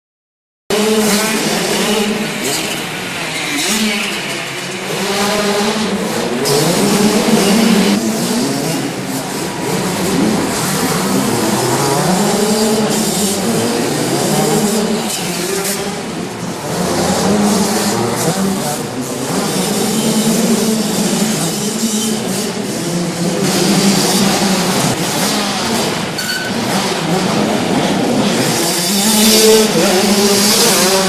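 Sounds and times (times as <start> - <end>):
motocross bike engines revving: 0.7 - 31.0.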